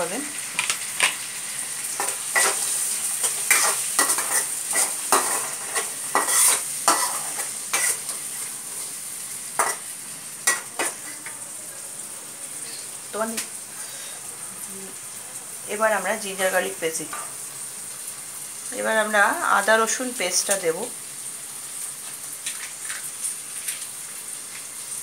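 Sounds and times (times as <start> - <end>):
peas sizzling in oil: 0.0 - 25.0
spatula scraping pan: 1.9 - 8.9.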